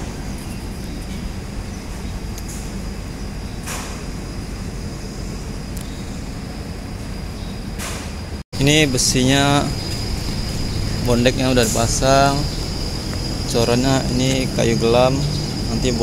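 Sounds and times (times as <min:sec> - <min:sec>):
low outdoor rumble: 0:00.0 - 0:16.0.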